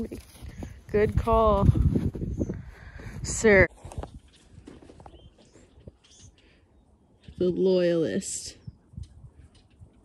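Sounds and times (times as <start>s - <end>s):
footsteps in snow: 0.0s - 2.4s.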